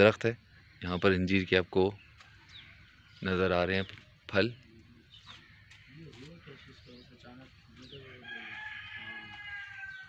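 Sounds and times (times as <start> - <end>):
rooster crowing: 8.1 - 10.0.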